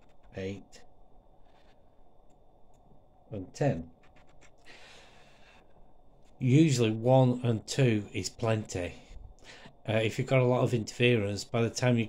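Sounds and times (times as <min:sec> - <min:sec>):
soft breath: 0:01.4 - 0:02.1, 0:04.6 - 0:05.9, 0:09.4 - 0:09.8.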